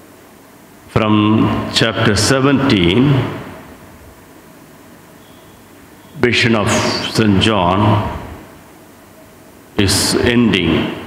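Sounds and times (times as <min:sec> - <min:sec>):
faint room hiss: 0:00.0 - 0:11.0
man speaking into a microphone: 0:00.9 - 0:03.6, 0:06.2 - 0:08.5, 0:09.8 - 0:11.0.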